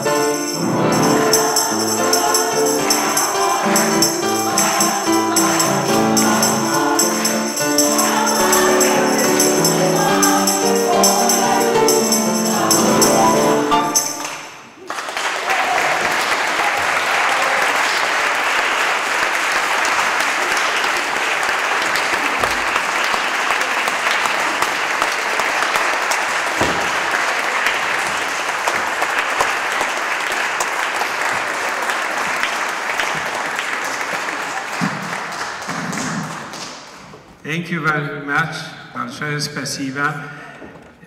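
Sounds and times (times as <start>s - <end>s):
choir singing: 0.0s - 14.8s
audience applauding: 0.9s - 37.1s.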